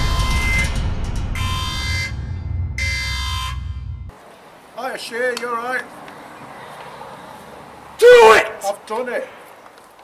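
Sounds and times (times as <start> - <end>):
deep rumble: 0.0 - 4.1
bright buzzing tone: 1.4 - 4.1.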